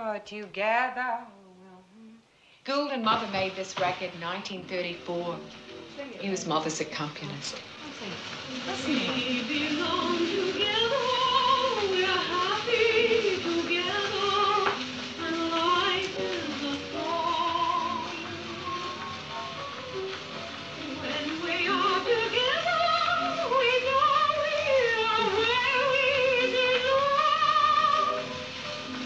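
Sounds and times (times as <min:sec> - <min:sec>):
woman singing with vibrato: 0:00.0 - 0:03.0, 0:08.7 - 0:18.2, 0:20.9 - 0:28.2
instrumental accompaniment: 0:03.8 - 0:29.0.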